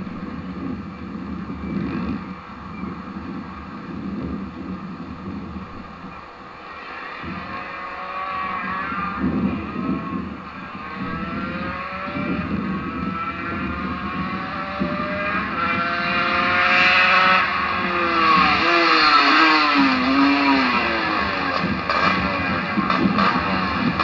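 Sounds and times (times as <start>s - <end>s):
motorcycle engine revving: 6.7s - 24.0s.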